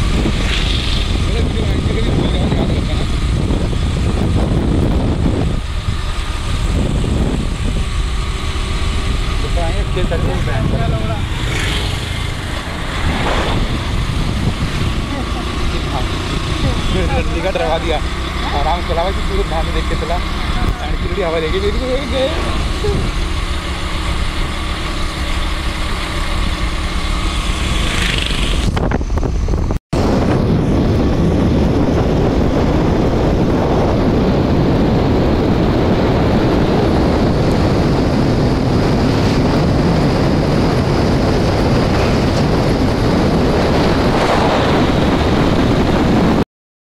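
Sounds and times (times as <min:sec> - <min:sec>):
engine hum: 0:00.0 - 0:46.4
road and wind noise: 0:00.0 - 0:46.4.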